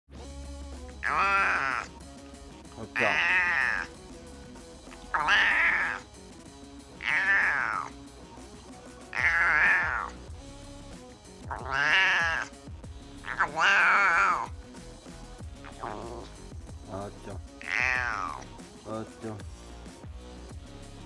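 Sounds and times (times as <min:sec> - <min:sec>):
cat meowing loudly: 0:01.0 - 0:01.9, 0:02.9 - 0:03.9, 0:04.9 - 0:06.0, 0:07.0 - 0:08.0, 0:09.1 - 0:10.2, 0:11.5 - 0:12.6, 0:13.2 - 0:14.5, 0:17.6 - 0:18.5.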